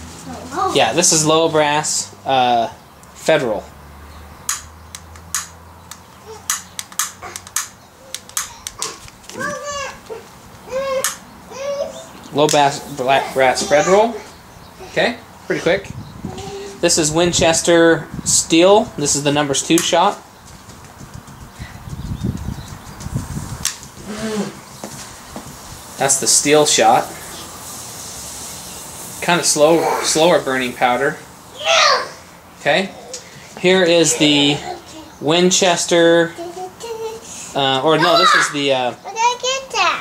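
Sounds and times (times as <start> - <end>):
sharp click: 4.5 - 9.0
powder burning with hiss: 23.2 - 32.0.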